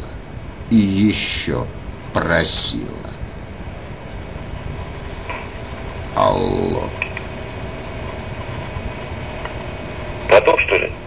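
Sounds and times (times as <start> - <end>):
faint hum: 0.0 - 11.0
telephone line rumble and hiss: 0.0 - 11.0.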